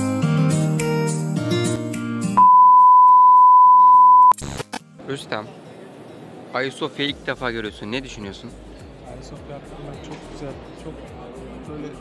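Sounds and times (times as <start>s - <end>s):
electronic test-tone beep: 2.4s - 4.4s.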